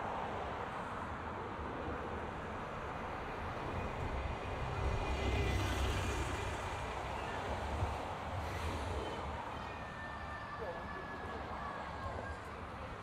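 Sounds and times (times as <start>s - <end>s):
bus engine rumble: 0.0s - 13.0s
street traffic: 0.0s - 13.0s.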